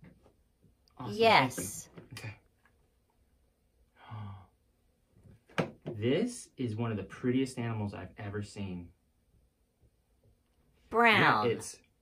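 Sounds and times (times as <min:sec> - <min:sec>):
man's breathy sigh: 0:04.0 - 0:04.5.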